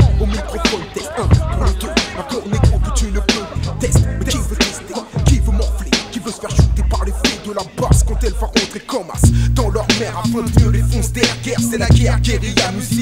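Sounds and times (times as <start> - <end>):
deep kick drums: 0.0 - 0.4, 1.3 - 1.8, 2.6 - 4.6, 5.2 - 5.9, 6.6 - 7.2, 7.9 - 8.4, 9.2 - 12.6
rapping over a hip-hop beat: 0.0 - 13.0.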